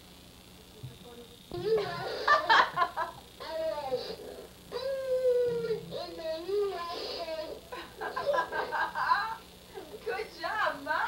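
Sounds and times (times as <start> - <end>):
child vocalizing sing-song: 3.4 - 7.6.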